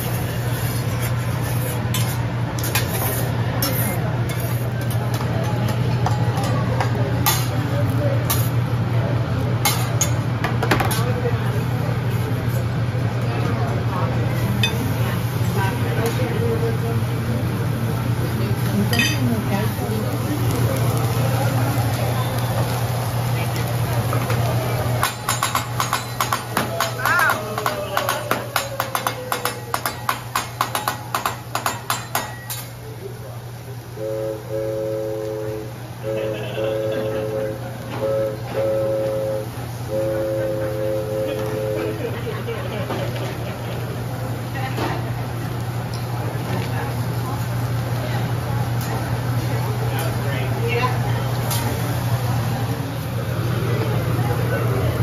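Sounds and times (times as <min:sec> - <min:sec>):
indistinct chatter: 0:00.0 - 0:55.0
murmur of diners talking: 0:00.0 - 0:55.0
metal spatula tapping griddle: 0:25.0 - 0:32.7
steady low hum: 0:33.7 - 0:42.8.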